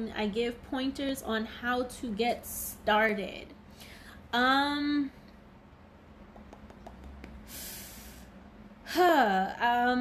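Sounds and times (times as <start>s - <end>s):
woman's sharp nasal breath: 7.5s - 8.4s.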